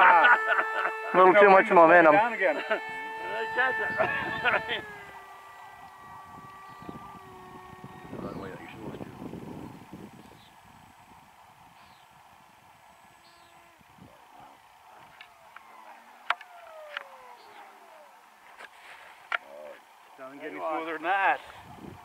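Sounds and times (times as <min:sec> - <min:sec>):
electric ducted fan whine: 0:00.0 - 0:22.0.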